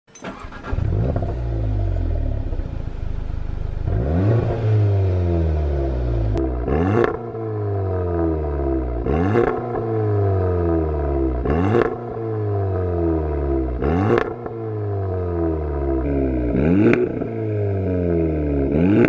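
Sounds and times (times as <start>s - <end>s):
car engine starting and revving: 0.2s - 19.0s.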